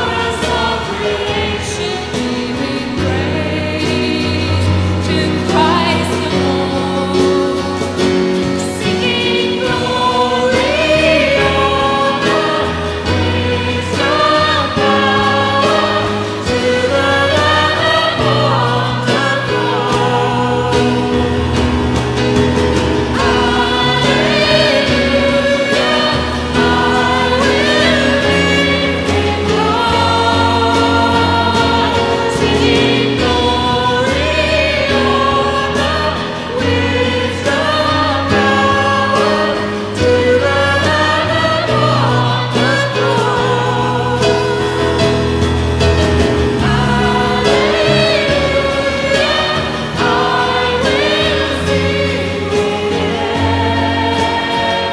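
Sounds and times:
woman singing into a microphone: 0.0s - 21.2s
people singing: 0.0s - 54.9s
steady bass: 0.0s - 54.9s
worship band playing: 0.0s - 54.9s.

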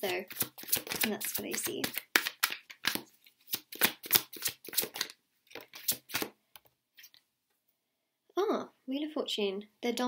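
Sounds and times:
cards being shuffled: 0.0s - 6.4s.

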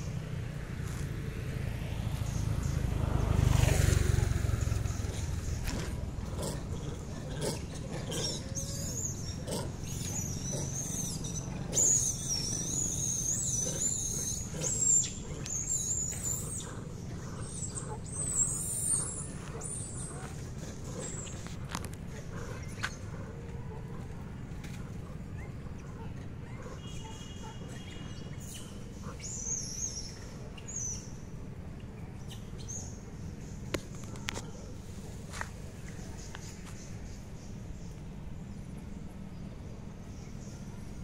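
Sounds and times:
motor vehicle passing: 0.0s - 31.6s.

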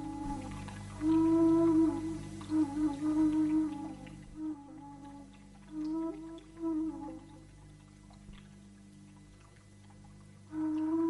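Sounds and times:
slow solo melody: 0.0s - 8.2s, 10.5s - 11.0s
steady low hum: 0.0s - 11.0s.

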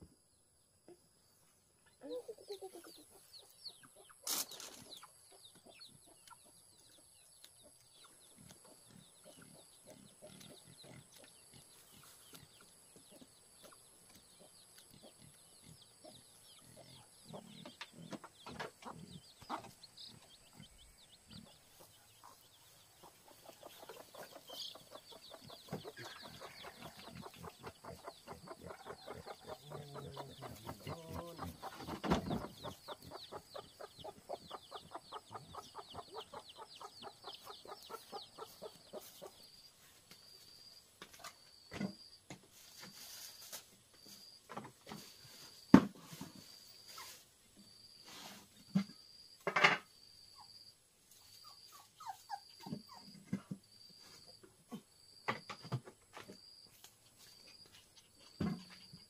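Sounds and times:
hen clucking: 2.0s - 7.0s, 7.6s - 39.6s
chicks peeping: 2.0s - 40.1s.

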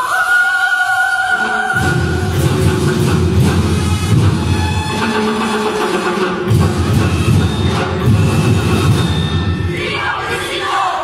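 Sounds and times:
heavy rumbling drumming: 1.8s - 9.6s.

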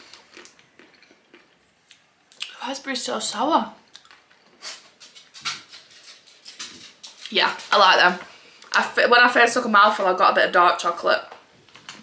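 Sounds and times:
person chewing: 0.0s - 2.6s, 3.9s - 5.3s.

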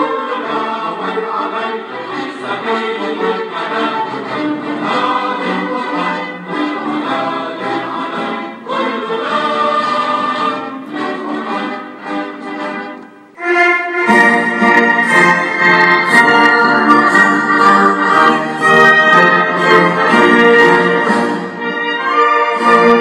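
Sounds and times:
orchestra playing an anthem: 0.0s - 23.0s.

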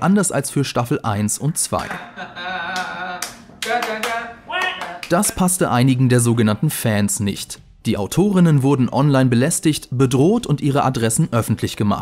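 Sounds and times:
men's voices: 1.1s - 8.4s
man clapping hands: 2.8s - 5.4s.

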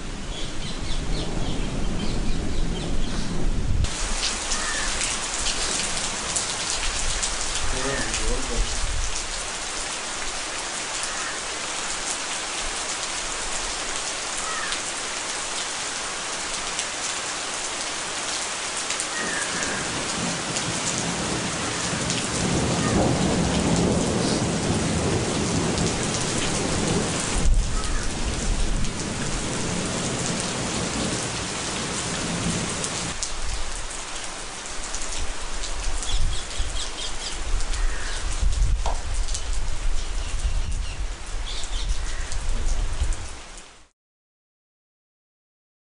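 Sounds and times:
heavy rain falling: 0.0s - 43.9s
low rolling thunder: 19.6s - 33.2s.

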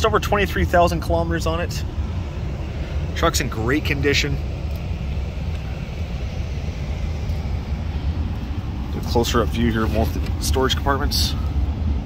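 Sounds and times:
climate fan hiss: 0.0s - 12.0s
truck engine idling: 0.0s - 12.0s.

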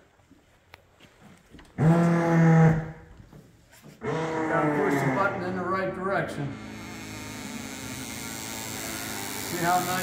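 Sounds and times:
electric pump motor droning: 6.4s - 10.0s.

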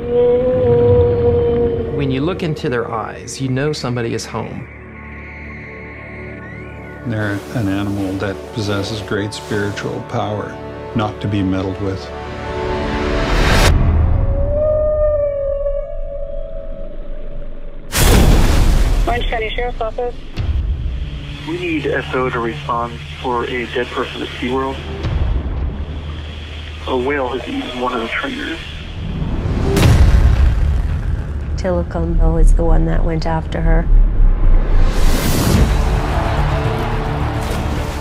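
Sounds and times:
killer whale call: 0.0s - 2.9s, 14.1s - 17.7s
killer whale whistle: 4.7s - 7.1s
steady low drone: 20.0s - 38.0s.

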